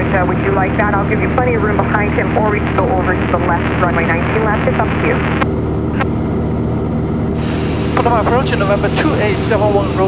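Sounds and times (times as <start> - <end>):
propeller aircraft engine droning: 0.0 - 10.0.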